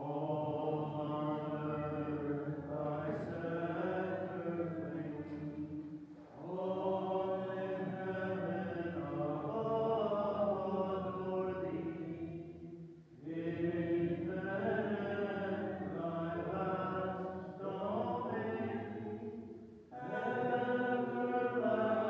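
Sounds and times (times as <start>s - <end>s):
person singing a hymn: 0.0s - 22.0s.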